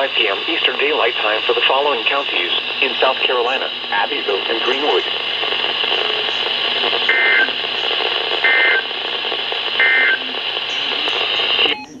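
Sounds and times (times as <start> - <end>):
static hiss: 0.0 - 12.0.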